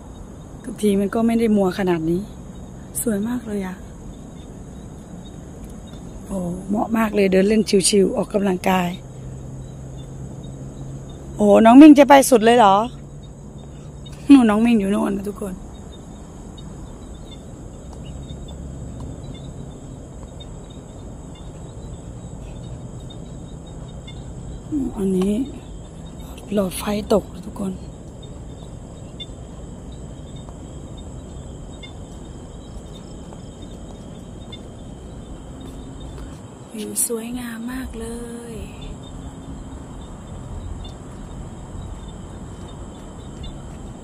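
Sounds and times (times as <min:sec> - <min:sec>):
distant city traffic rumble: 0:00.0 - 0:44.0
high-pitched insect chirr: 0:00.0 - 0:44.0.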